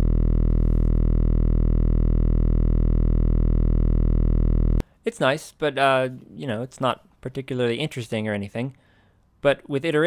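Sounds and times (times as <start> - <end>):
low buzzing synth tone: 0.0 - 4.8.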